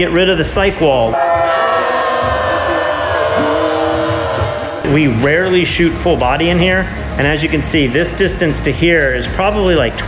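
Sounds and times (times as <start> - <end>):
woman screaming: 1.2 - 4.8
crowd noise: 1.2 - 6.7.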